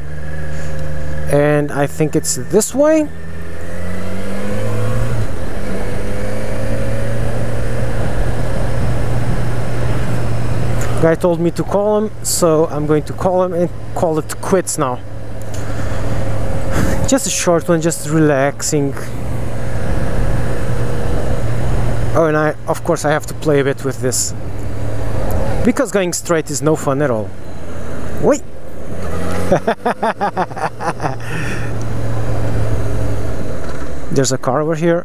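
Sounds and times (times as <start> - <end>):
motorcycle engine running: 0.0 - 34.0.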